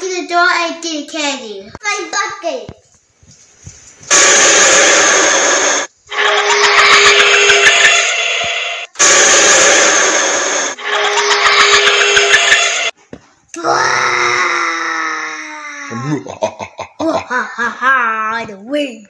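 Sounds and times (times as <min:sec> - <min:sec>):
harsh jump-scare screech: 0:04.1 - 0:12.9.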